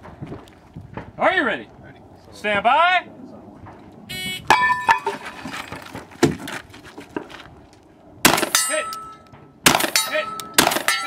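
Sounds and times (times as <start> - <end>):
shot timer beep: 4.1 - 4.6
steel target ringing: 4.5 - 5.1, 8.3 - 11.0
gunshots: 8.2 - 8.6, 9.6 - 11.0
wood striking steel target: 8.2 - 11.0.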